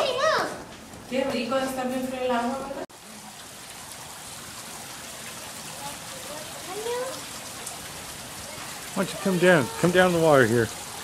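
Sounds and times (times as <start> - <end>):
running splashing water: 0.9 - 11.0.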